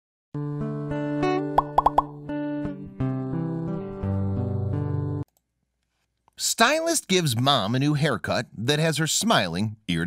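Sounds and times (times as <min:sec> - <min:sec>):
rising plop sound effects: 0:01.6 - 0:02.1.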